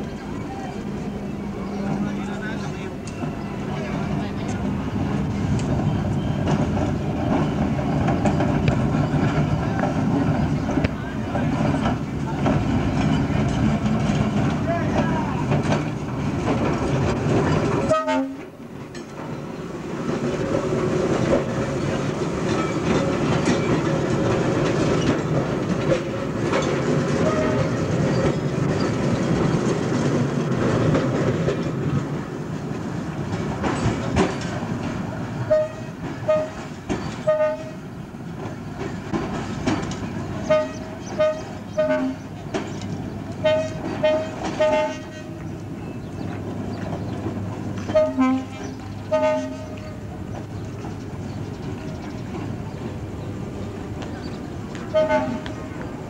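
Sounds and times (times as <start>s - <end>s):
railcar wheels rumbling on rails: 0.0s - 56.0s.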